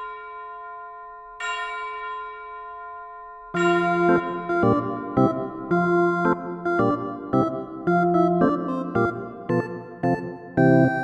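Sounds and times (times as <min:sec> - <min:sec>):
bell chime ringing: 0:00.0 - 0:07.1.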